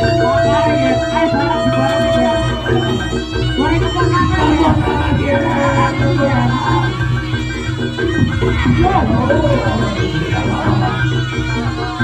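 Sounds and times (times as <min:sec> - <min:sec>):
drums: 0:00.0 - 0:12.0
gliding melody line: 0:00.0 - 0:12.0
keyboard: 0:00.0 - 0:12.0.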